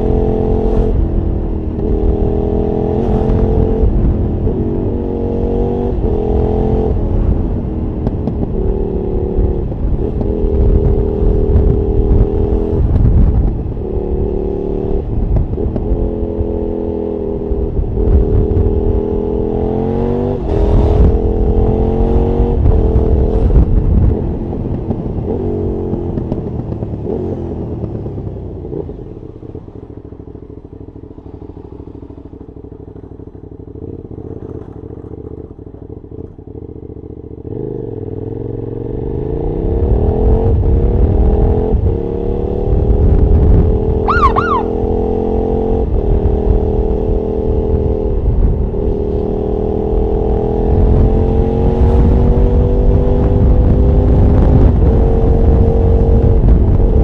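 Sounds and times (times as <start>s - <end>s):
motorcycle engine: 0.0s - 56.8s.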